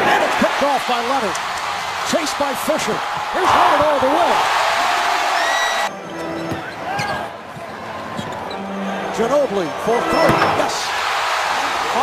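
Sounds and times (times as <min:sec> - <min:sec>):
crowd cheering loudly: 0:00.0 - 0:06.0, 0:06.8 - 0:12.0.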